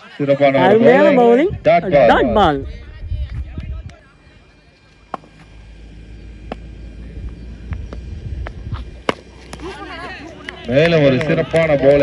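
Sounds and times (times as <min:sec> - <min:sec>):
faint distant voices: 0:00.0 - 0:08.2
low rumble: 0:01.4 - 0:10.7.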